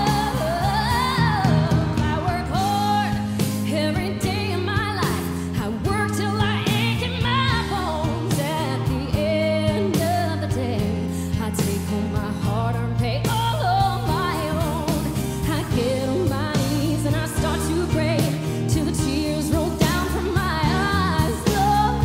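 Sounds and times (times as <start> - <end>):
instrumental backing music: 0.0 - 22.0
woman singing into microphone: 0.0 - 22.0.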